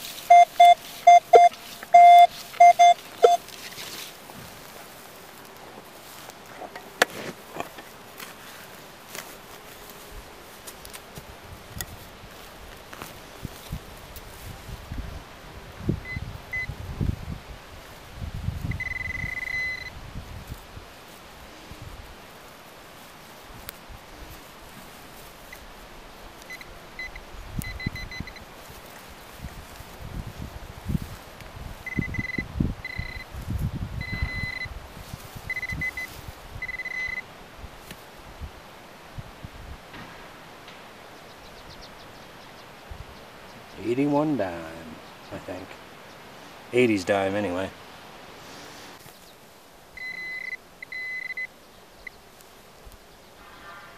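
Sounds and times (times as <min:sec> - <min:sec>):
knife and hands scraping soil: 0:00.0 - 0:10.0
pinpointer beeping: 0:00.3 - 0:03.4, 0:16.1 - 0:16.7, 0:18.7 - 0:19.9, 0:26.5 - 0:28.4, 0:31.9 - 0:33.3, 0:34.0 - 0:34.7, 0:35.5 - 0:37.2, 0:50.0 - 0:51.5.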